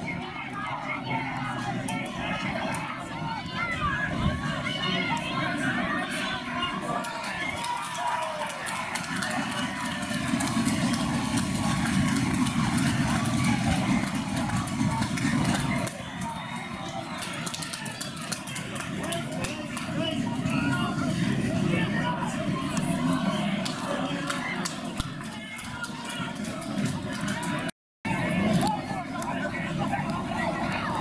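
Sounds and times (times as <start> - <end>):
crowd voices and shouts: 0.0 - 31.0
steady low crowd rumble: 0.0 - 31.0.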